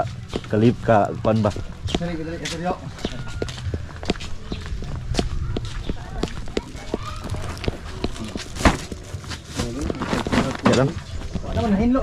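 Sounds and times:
footsteps on packed dirt: 0:00.0 - 0:12.0.

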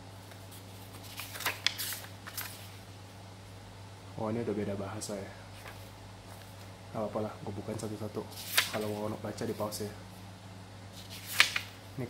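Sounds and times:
paper pages being turned: 0:00.2 - 0:02.8, 0:05.6 - 0:06.7, 0:08.3 - 0:09.8, 0:11.0 - 0:11.8.

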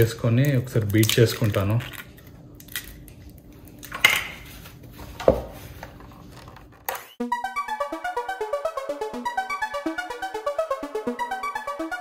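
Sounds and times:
electronic keyboard music: 0:07.1 - 0:12.0.

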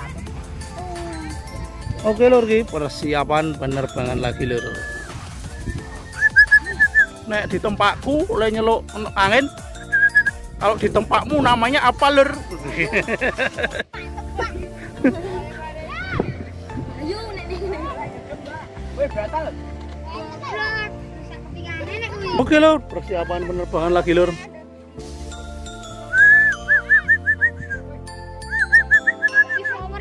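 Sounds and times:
children's voices: 0:00.0 - 0:02.4, 0:13.9 - 0:18.7, 0:19.9 - 0:22.5, 0:29.3 - 0:30.0
background music: 0:00.0 - 0:30.0
bird whistling short notes: 0:04.8 - 0:07.1, 0:28.5 - 0:29.8.

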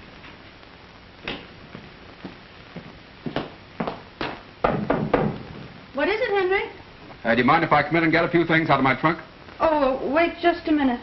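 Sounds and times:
knocking on wooden door: 0:04.6 - 0:05.7.

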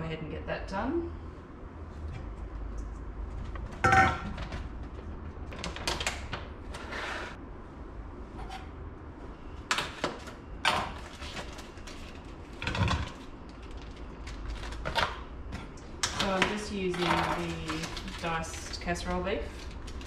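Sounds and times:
containers knocking and clattering: 0:03.5 - 0:05.9.

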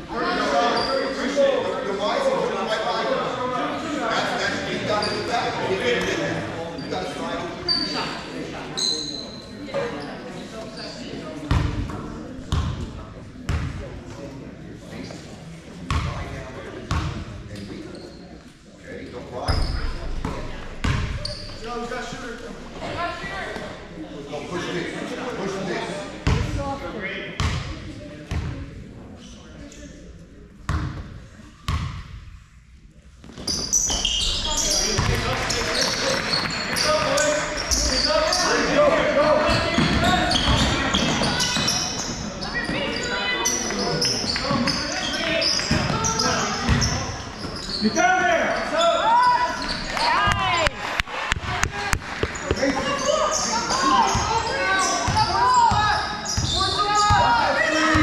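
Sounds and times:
chatter of voices: 0:00.0 - 0:31.8, 0:32.4 - 0:58.0.

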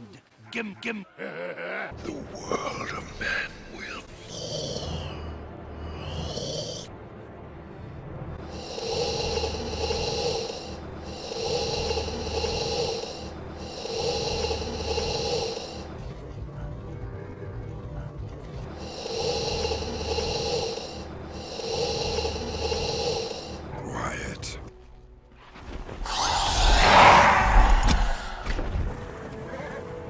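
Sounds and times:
raspy snore-like breathing: 0:04.0 - 0:06.9, 0:08.4 - 0:16.2, 0:18.4 - 0:23.8.

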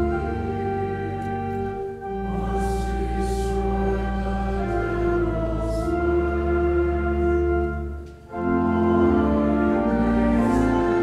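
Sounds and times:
congregation singing: 0:00.0 - 0:11.0
organ accompaniment: 0:00.0 - 0:11.0.

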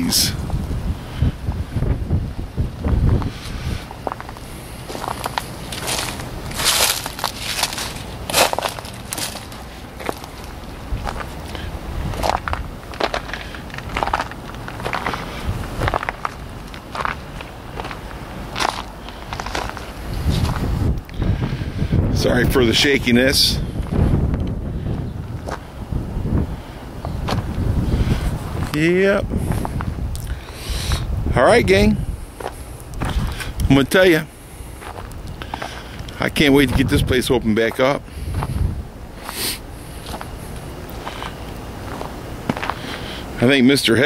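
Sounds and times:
footsteps crunching on leaves and gravel: 0:03.1 - 0:20.9, 0:32.2 - 0:33.9, 0:34.6 - 0:36.9, 0:37.6 - 0:43.1.

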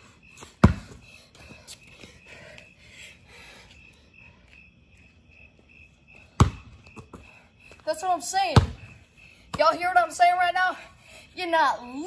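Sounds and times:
crickets chirping: 0:00.0 - 0:12.0
basketball bouncing on pavement: 0:00.3 - 0:01.7, 0:06.2 - 0:10.2.

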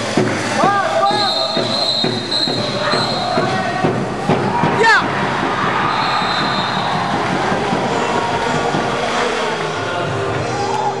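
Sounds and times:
crowd din in swimming hall: 0:00.0 - 0:11.0.

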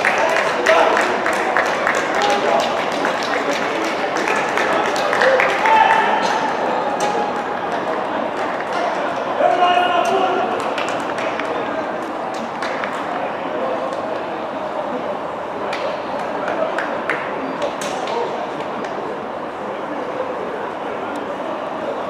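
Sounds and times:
background murmur: 0:00.0 - 0:22.0.

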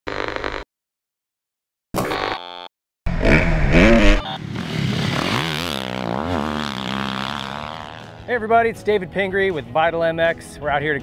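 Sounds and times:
motorcycle engine revving: 0:03.1 - 0:08.6
glitchy electronic sound effect: 0:03.2 - 0:04.4.

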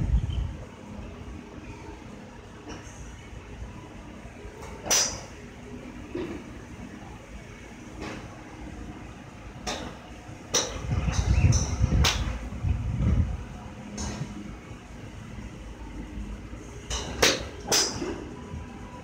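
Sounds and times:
low rumble: 0:00.0 - 0:00.7, 0:10.8 - 0:13.6
golf clubs striking balls: 0:04.6 - 0:05.4, 0:09.6 - 0:12.3, 0:13.9 - 0:14.4, 0:16.8 - 0:18.3.

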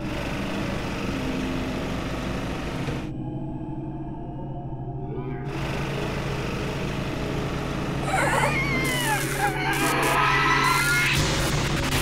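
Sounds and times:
cartoon car engine: 0:05.5 - 0:11.4.

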